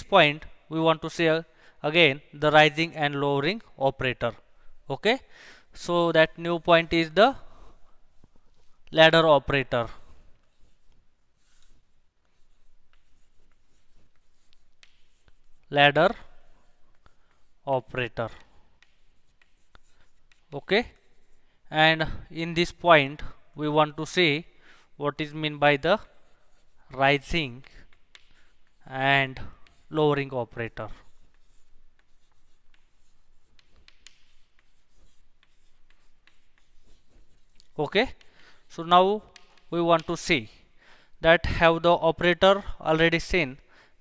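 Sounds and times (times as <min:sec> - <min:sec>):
chalk scratching on blackboard: 0:09.7 - 0:21.6, 0:23.9 - 0:40.6
chalk tapping: 0:09.8 - 0:21.6, 0:25.8 - 0:40.6.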